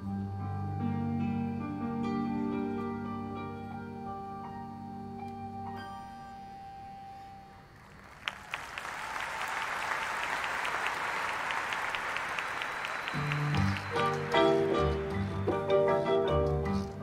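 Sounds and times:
audience applause: 7.8 - 16.4
marching band playing: 12.8 - 17.0.

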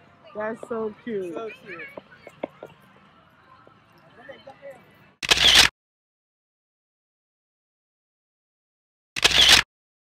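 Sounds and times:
camera shutter click: 5.2 - 5.7, 9.2 - 9.7.

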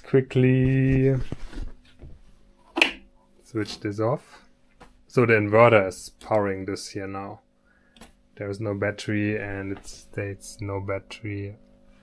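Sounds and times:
faint handling noises: 0.4 - 5.1.

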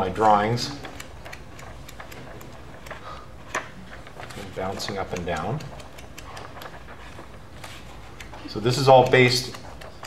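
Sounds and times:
paper sheets flicking: 0.0 - 10.0.

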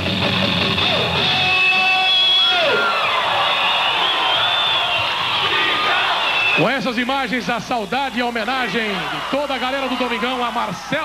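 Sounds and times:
live rock band: 0.0 - 3.0
crowd yelling: 0.3 - 11.0.

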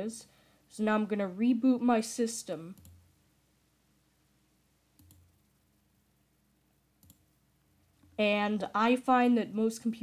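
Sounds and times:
faint mouse clicks: 2.7 - 3.0, 5.0 - 5.4, 7.0 - 7.3.

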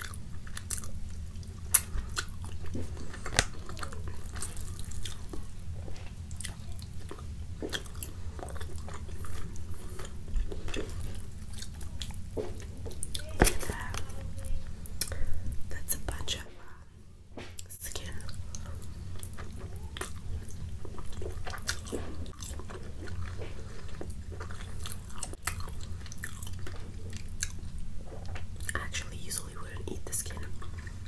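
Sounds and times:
chewing mouth clicks and smacks: 0.0 - 14.1, 17.6 - 28.9
steady low hum: 0.0 - 31.0.

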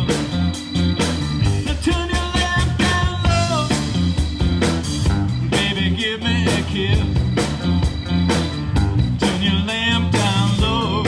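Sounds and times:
bass line: 0.0 - 11.0
drum beat: 0.0 - 11.0
electric guitars bending notes: 0.0 - 11.0
live rock band playing: 0.0 - 11.0.

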